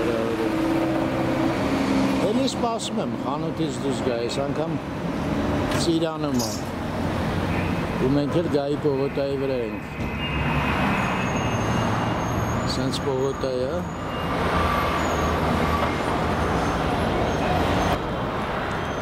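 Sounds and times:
city street traffic: 0:00.0 - 0:19.0.

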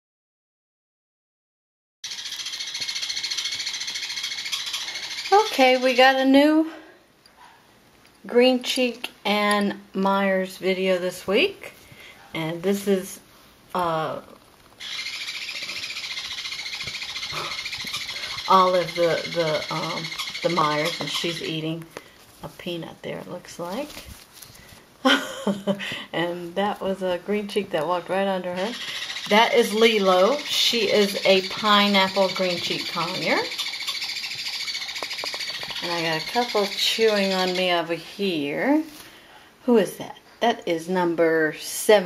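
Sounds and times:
small parrots chirping: 0:02.0 - 0:06.1, 0:14.8 - 0:21.7, 0:28.5 - 0:37.9
birds chattering: 0:02.0 - 0:06.5, 0:14.8 - 0:21.8, 0:28.0 - 0:38.0.

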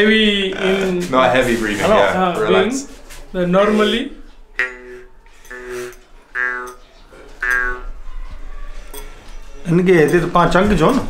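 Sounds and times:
jaw harp twangs: 0:04.6 - 0:06.8, 0:07.4 - 0:07.9.

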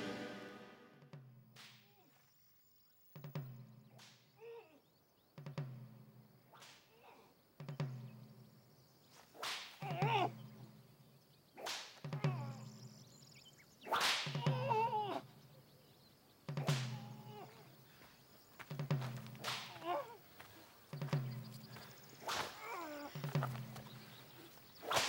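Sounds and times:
whip cracking on skin: 0:03.9 - 0:04.4, 0:06.5 - 0:07.2, 0:09.2 - 0:10.2, 0:11.6 - 0:12.2, 0:13.8 - 0:14.8, 0:16.6 - 0:17.5, 0:19.4 - 0:20.2, 0:22.2 - 0:23.1, 0:24.8 - 0:25.0.

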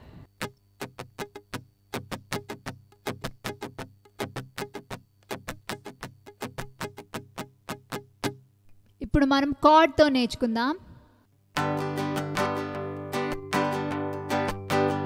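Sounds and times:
classical guitar strumming: 0:00.4 - 0:08.5, 0:11.6 - 0:15.0.

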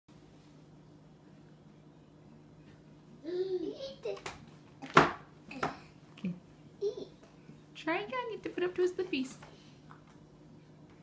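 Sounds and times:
small children's voice sounds: 0:03.2 - 0:05.8.

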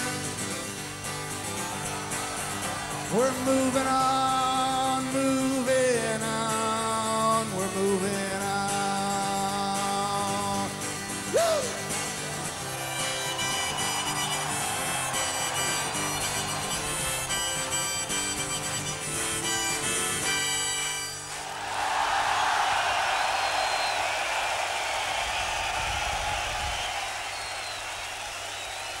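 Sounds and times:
crowd cheering and applauding: 0:00.0 - 0:05.1, 0:11.2 - 0:29.0
harmonica: 0:00.0 - 0:21.5
guitar: 0:00.0 - 0:24.1.

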